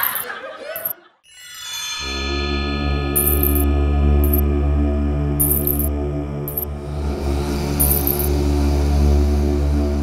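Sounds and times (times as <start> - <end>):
ringing bell-like tones: 0.0 - 0.9, 3.2 - 4.4, 5.4 - 5.9
high jingle: 0.0 - 4.4, 5.4 - 5.9, 7.8 - 8.3
low drone: 2.0 - 10.0.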